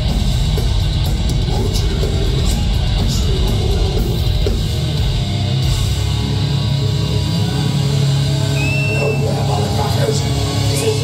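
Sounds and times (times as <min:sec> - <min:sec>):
distorted guitars and bass: 0:00.0 - 0:11.0
short high whistle: 0:08.6 - 0:09.3.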